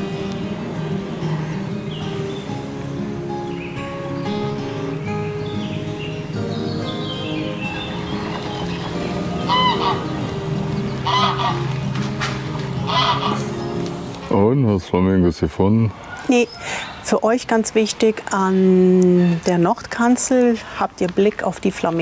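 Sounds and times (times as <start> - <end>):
background music: 0.0 - 15.8
water bird harsh calls: 9.5 - 10.3, 10.9 - 11.8, 12.8 - 13.6.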